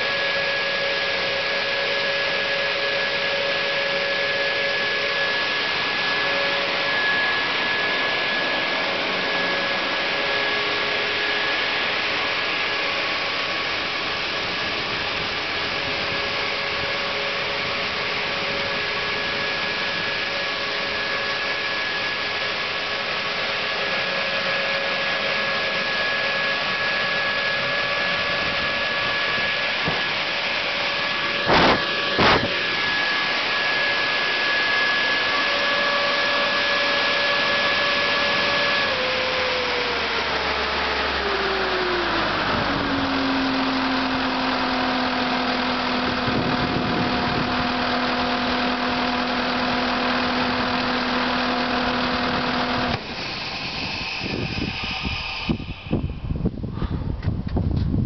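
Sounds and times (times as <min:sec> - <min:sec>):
diesel engine running: 0:00.0 - 0:56.8.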